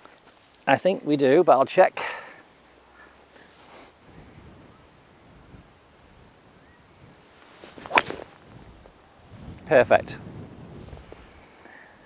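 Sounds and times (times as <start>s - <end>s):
golf club striking ball: 7.8s - 8.4s.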